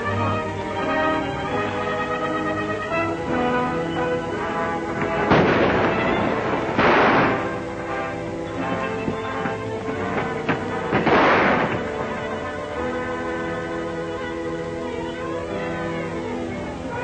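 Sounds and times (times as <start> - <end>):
orchestral film music: 0.0 - 17.0
gunshots: 5.0 - 12.4.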